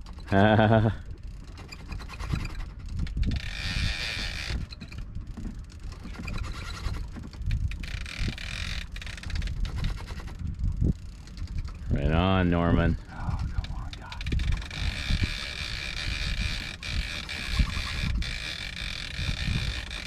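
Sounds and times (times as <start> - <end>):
boat engine running slowly: 0.0 - 20.0
wind on microphone: 1.8 - 20.0.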